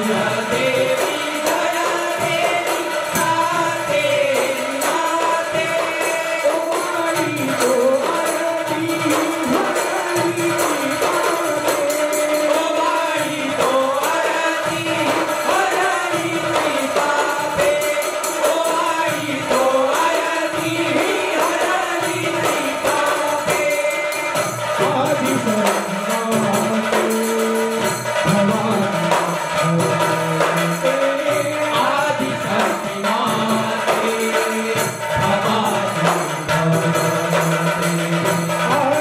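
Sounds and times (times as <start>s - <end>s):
jingling hand cymbals: 0.0s - 39.0s
men singing in chorus: 0.0s - 39.0s.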